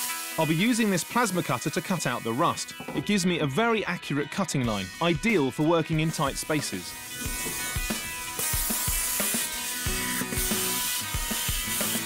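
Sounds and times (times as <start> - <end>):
plasma cutter hissing: 0.0 - 2.8, 6.2 - 12.0
background music with beat: 0.0 - 12.0.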